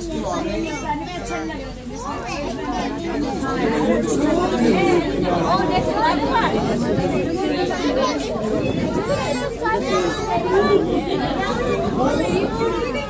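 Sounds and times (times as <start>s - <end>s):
overlapping voices chattering: 0.0s - 13.0s.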